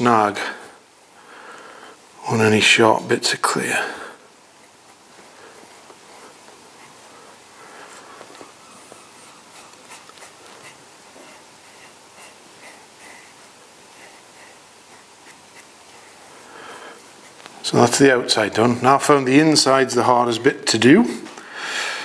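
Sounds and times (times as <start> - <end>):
sponge rubbing clay bowl: 7.9 - 17.4.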